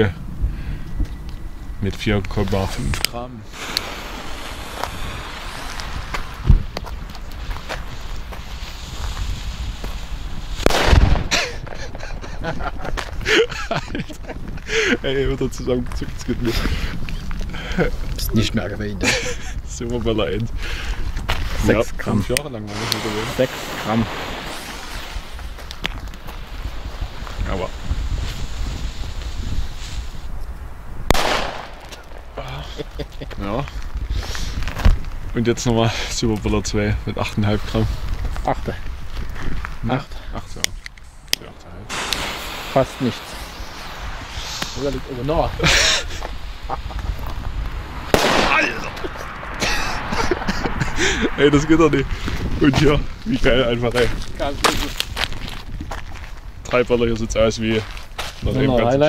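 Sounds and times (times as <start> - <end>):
wind rumble on microphone: 0.0 - 59.0
fuse hissing and sputtering: 2.5 - 12.6, 22.6 - 30.3, 40.2 - 52.4
firecracker bang: 3.5 - 12.0, 22.7 - 30.1, 31.0 - 32.4, 41.8 - 51.1
echo of bang: 48.1 - 49.0.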